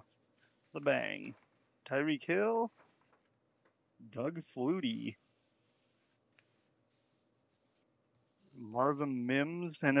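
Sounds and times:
trading cards rubbing: 5.2s - 9.2s.

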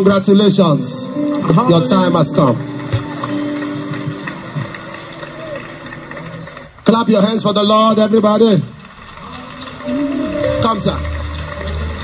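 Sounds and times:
background music: 0.0s - 12.0s
congregation clapping: 1.1s - 12.0s.

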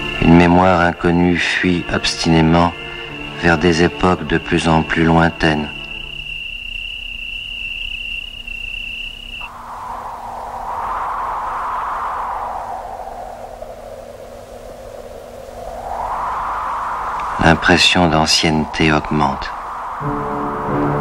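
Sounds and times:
thin steady high tone: 0.0s - 21.0s
hiss rising and falling in pitch: 2.2s - 21.0s.

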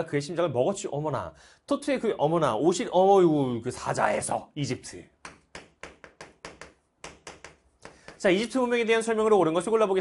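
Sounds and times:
chalk tapping on chalkboard: 5.2s - 8.4s.

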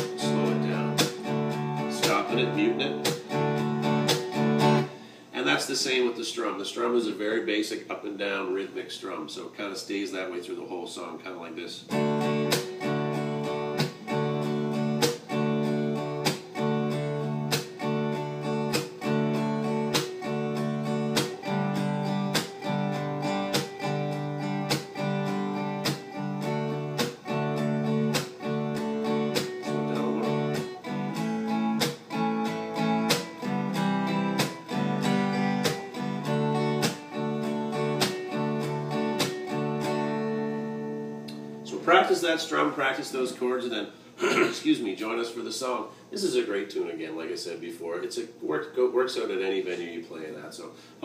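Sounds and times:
muted slap strums on guitar: 0.0s - 4.9s, 12.4s - 13.0s, 13.7s - 14.3s, 15.0s - 15.5s, 16.2s - 16.6s, 17.5s - 17.9s, 18.7s - 19.3s, 19.9s - 20.3s, 22.2s - 27.4s, 28.0s - 30.8s, 31.8s - 32.2s, 33.0s - 37.2s, 37.9s - 39.6s
acoustic guitar strumming: 0.0s - 7.6s, 11.8s - 43.4s.

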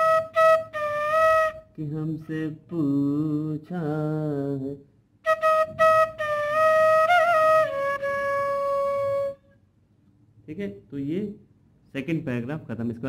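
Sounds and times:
man singing: 1.8s - 4.8s
bamboo flute phrase: 5.3s - 9.4s.

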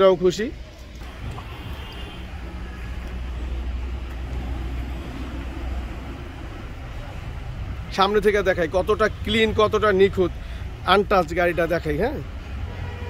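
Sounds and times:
low rumble of motor vehicle: 0.6s - 13.0s.

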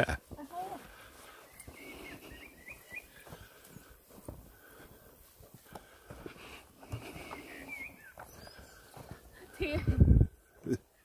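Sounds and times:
footsteps on grass: 0.0s - 10.6s
faint high chirps: 1.3s - 3.3s, 7.0s - 9.2s.

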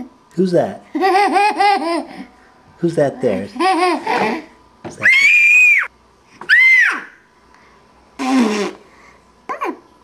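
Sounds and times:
toddler squealing: 6.5s - 7.2s.

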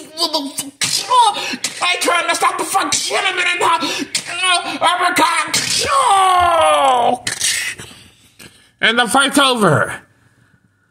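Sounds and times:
man speaking: 0.0s - 6.0s, 8.8s - 10.1s
man shouting: 0.8s - 7.2s.

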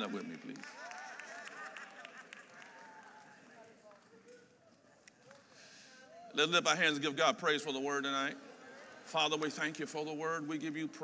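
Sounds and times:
murmur of many voices: 0.0s - 11.0s.

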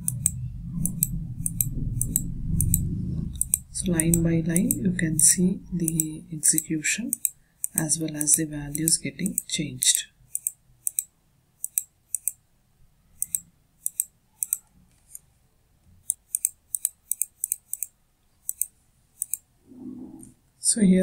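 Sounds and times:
computer mouse button clicking: 3.4s - 9.5s, 10.3s - 12.4s, 13.2s - 14.7s, 16.0s - 19.4s.

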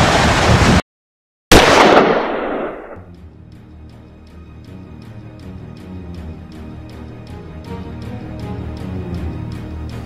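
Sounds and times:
music with ticking beat: 3.3s - 10.0s.

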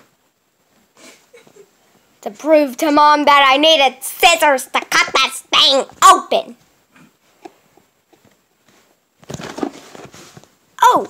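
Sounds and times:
cardboard box rustling and scraping: 9.2s - 10.5s.

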